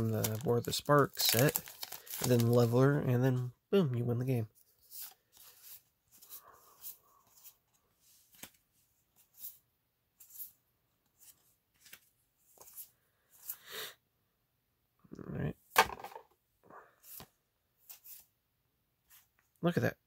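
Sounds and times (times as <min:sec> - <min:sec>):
cards sliding swishes and clicks: 0:04.7 - 0:08.6, 0:10.2 - 0:13.7, 0:17.0 - 0:18.3.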